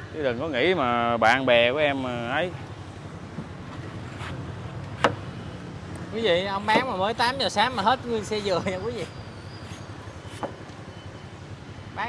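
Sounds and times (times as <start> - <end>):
street traffic hum: 0.0 - 12.0
knife cutting coconut husk: 8.1 - 10.6.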